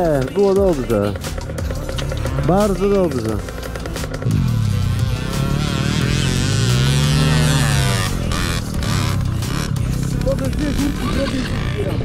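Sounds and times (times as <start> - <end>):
dirt bike engine revving: 0.0 - 12.0.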